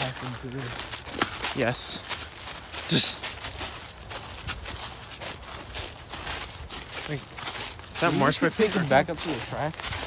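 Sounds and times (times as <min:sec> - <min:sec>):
footsteps through dry leaves: 0:00.0 - 0:10.0.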